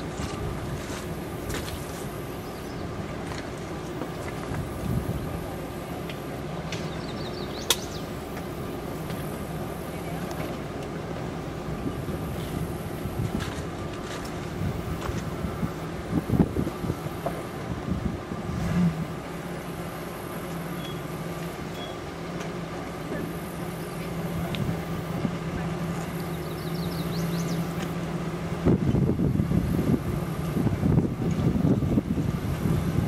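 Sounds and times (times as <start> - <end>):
engine running at low revs: 0.0 - 33.0.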